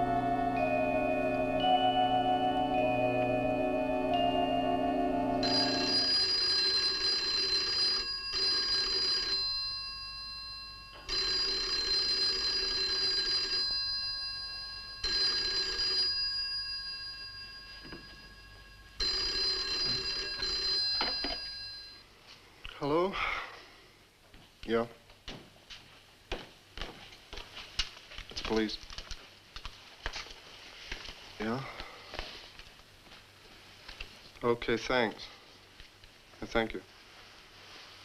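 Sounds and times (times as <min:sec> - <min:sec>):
telephone bell ringing: 0:00.0 - 0:22.0.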